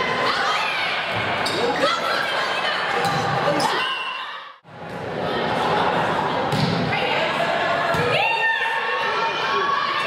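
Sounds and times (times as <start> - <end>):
players calling and shouting: 0.0 - 10.0.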